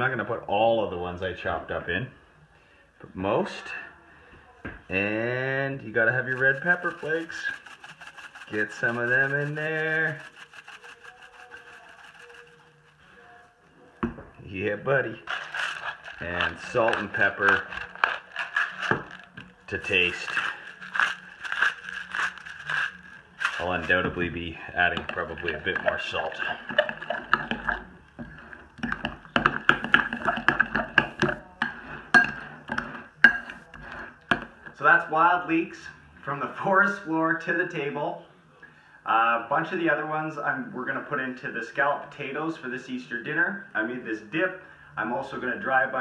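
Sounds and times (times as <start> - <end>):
spoon stirring thick dip in bowl: 4.9 - 13.8, 14.4 - 34.6
pepper flakes rattling from shaker: 6.2 - 13.2, 15.2 - 24.0
spoon clinking against bowl: 29.3 - 32.5, 33.2 - 33.6.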